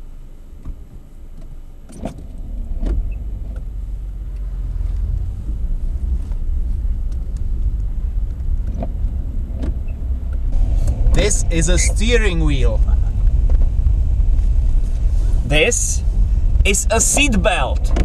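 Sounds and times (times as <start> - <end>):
car engine and road rumble: 0.0 - 18.0.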